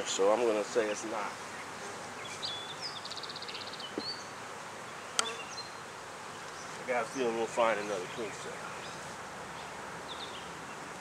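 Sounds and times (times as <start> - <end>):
songbird chirping: 0.0 - 11.0
honeybees buzzing: 0.1 - 11.0.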